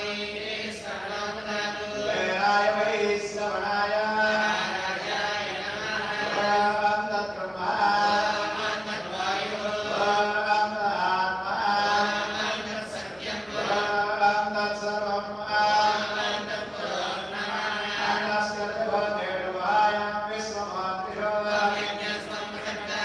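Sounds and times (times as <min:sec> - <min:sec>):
man chanting into microphone: 0:00.0 - 0:23.0.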